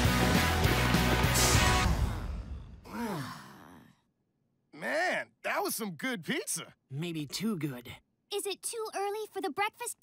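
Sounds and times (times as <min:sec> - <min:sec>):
man speaking: 0:04.7 - 0:08.0.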